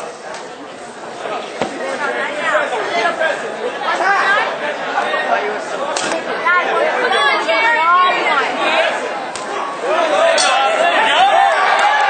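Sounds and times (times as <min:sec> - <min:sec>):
spectators calling out: 0:06.2 - 0:12.0.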